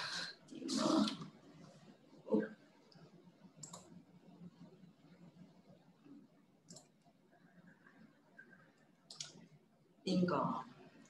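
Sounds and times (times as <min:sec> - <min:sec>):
computer mouse clicks: 0:02.9 - 0:04.0, 0:06.6 - 0:07.1, 0:08.8 - 0:09.5.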